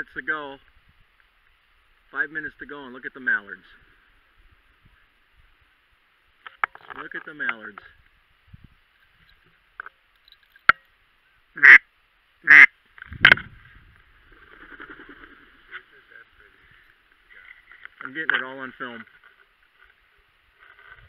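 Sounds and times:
duck quacking loudly: 11.6 - 11.8, 12.4 - 12.8
faint flock chatter: 14.5 - 17.9.

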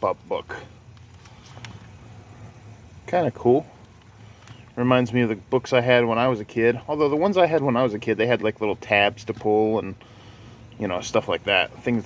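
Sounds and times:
papery clicks of book cover: 0.9 - 1.9.

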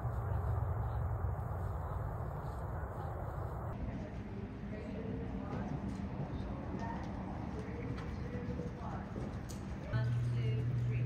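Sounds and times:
distant indistinct voices: 0.0 - 11.0
horse hooves on sand: 1.6 - 11.0.

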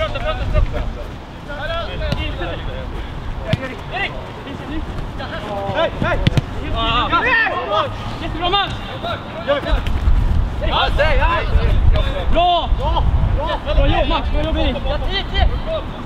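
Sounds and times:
players shouting: 1.5 - 16.0.

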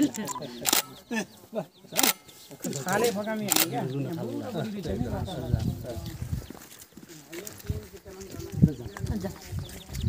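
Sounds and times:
people talking in a group: 0.0 - 10.0.

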